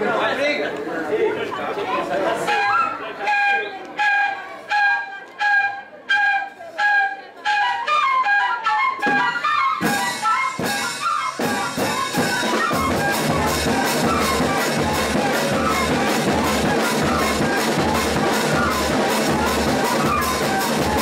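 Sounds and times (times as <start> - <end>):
drum strokes: 9.0 - 21.0.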